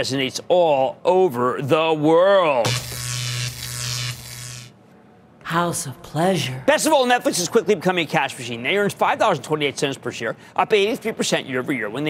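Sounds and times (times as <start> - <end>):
low electronic buzzing: 2.6 - 4.8.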